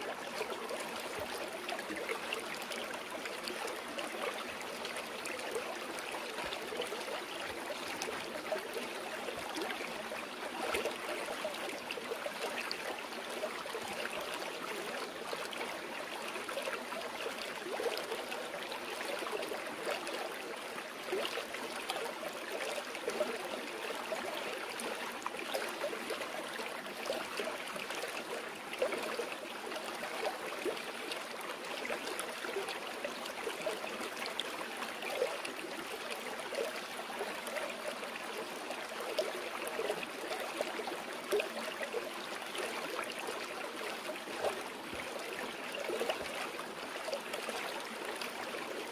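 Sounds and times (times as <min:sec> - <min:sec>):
stream water flowing: 0:00.0 - 0:48.9.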